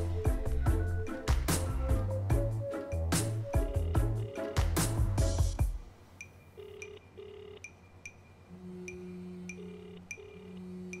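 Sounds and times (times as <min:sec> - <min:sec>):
soft background music: 0:00.0 - 0:11.0
telephone ringing tone: 0:03.6 - 0:04.6, 0:06.5 - 0:07.7, 0:08.9 - 0:10.7.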